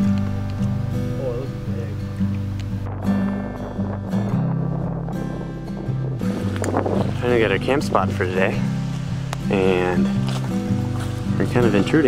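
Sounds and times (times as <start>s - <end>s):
background music with low notes: 0.0s - 12.0s.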